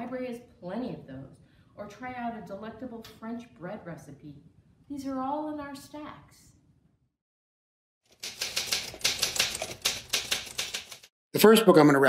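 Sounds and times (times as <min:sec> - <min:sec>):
manual typewriter typing: 0:08.1 - 0:11.1.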